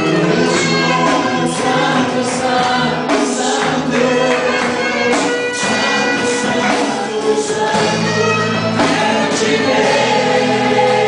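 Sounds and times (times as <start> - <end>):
drums: 0.0 - 11.0
electric guitar: 0.0 - 11.0
group singing through microphones: 0.0 - 11.0
keyboard: 0.0 - 11.0.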